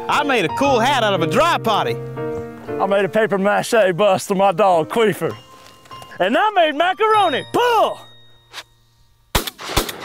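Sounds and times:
shotgun shot: 0:09.3 - 0:10.0.

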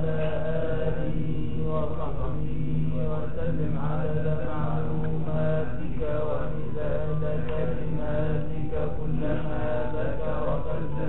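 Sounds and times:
men chanting a prayer: 0:00.0 - 0:11.0
steady low hum: 0:00.0 - 0:11.0.

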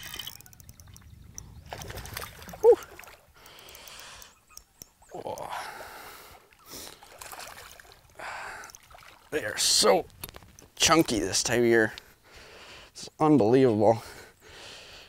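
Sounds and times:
fish splashing at water surface: 0:06.8 - 0:09.3.

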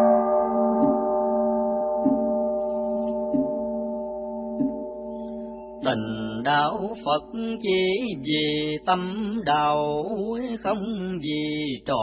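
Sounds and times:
bell ringing: 0:00.0 - 0:06.5
chanting: 0:02.0 - 0:02.5, 0:05.8 - 0:12.0.

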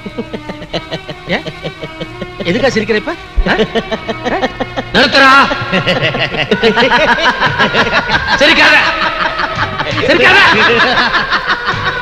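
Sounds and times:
background music: 0:00.0 - 0:12.0
man laughing: 0:00.0 - 0:12.0.

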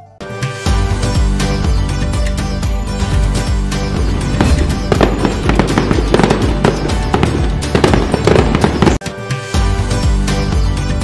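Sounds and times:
festive background music: 0:00.0 - 0:11.0
firecracker pops and crackles: 0:04.4 - 0:09.0.

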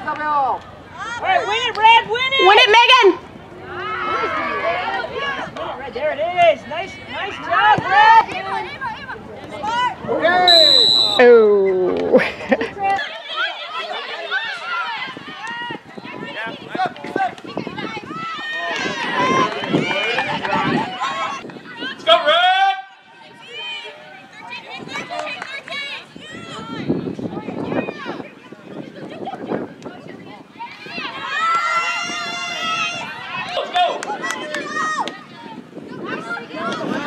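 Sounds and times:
people shouting outdoors: 0:00.3 - 0:11.5, 0:12.8 - 0:26.9, 0:30.6 - 0:37.0.

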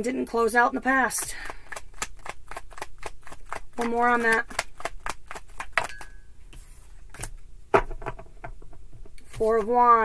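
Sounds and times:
cards being shuffled: 0:01.3 - 0:07.4.

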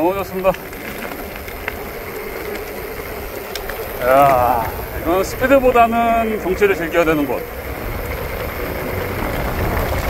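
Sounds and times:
bike rattle: 0:00.0 - 0:10.0
bike tyres rumbling: 0:00.0 - 0:10.0
gravel clicks: 0:00.0 - 0:10.0.

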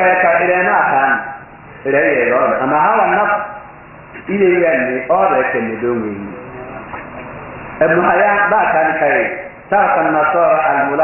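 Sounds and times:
man chanting speech: 0:04.3 - 0:06.6, 0:07.8 - 0:11.0.

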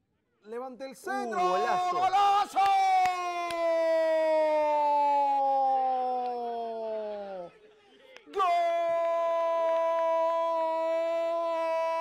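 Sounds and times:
man shouting goal cry: 0:01.2 - 0:06.2, 0:08.3 - 0:12.0.

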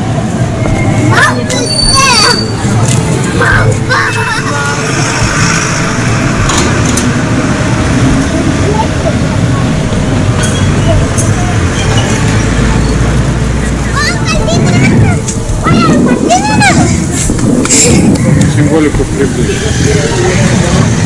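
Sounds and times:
deep vehicle rumble: 0:00.0 - 0:21.0
indistinct voices: 0:00.0 - 0:21.0
traffic noise: 0:00.0 - 0:21.0.

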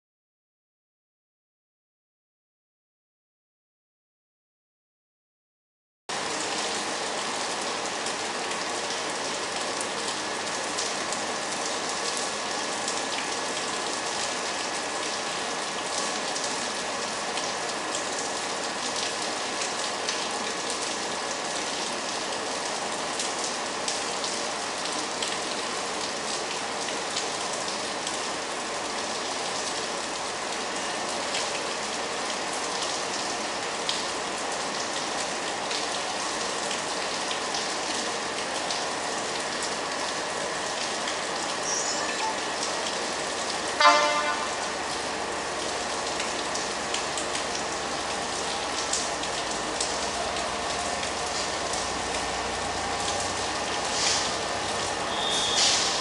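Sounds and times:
rain hissing on canopy: 0:06.1 - 0:56.0
water drips ticking: 0:33.9 - 0:53.9.

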